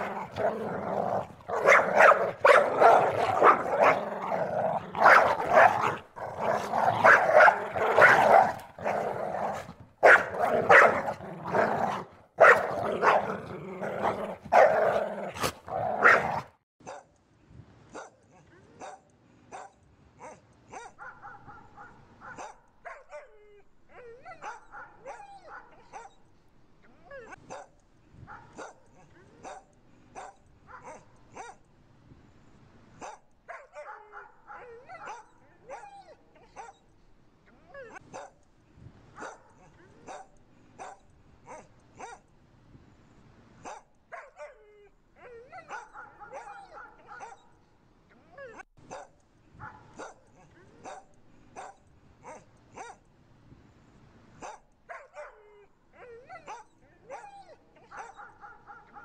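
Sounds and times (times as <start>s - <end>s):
dogs yelping and whining: 0.0s - 16.4s
dogs barking: 0.0s - 17.1s, 18.8s - 23.3s, 23.9s - 26.2s, 27.2s - 31.6s, 33.0s - 36.8s, 37.8s - 38.4s, 39.2s - 42.2s, 43.6s - 44.6s, 45.2s - 47.6s, 48.5s - 53.0s, 54.4s - 59.0s.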